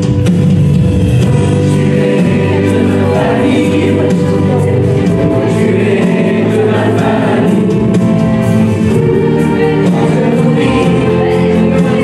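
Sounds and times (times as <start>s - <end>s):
group of people singing: 1.2s - 12.0s.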